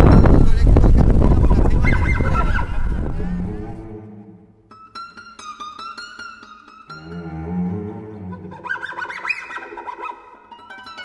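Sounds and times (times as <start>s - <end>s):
wind rumbling on microphone: 0.0s - 4.5s.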